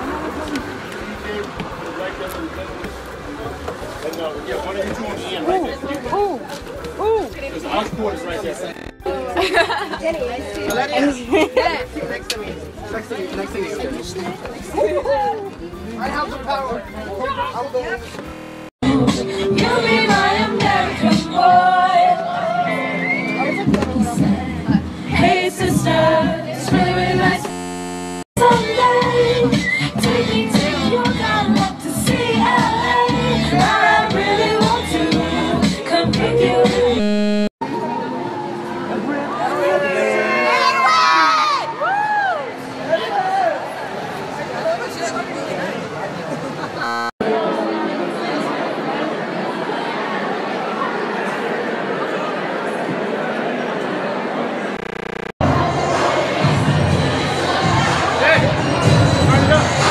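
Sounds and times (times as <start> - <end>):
people chattering: 0.0 - 28.2, 33.0 - 59.9
crowd cheering and shouting: 37.0 - 43.8.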